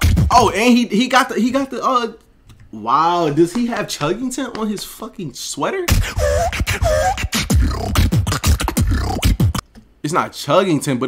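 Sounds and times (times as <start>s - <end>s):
beatboxing into a microphone: 0.0s - 0.6s, 5.9s - 9.6s.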